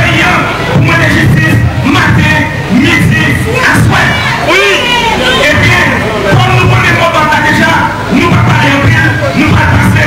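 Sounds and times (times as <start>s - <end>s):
crowd shouting: 0.0s - 10.0s
man shouting into microphone: 0.0s - 10.0s.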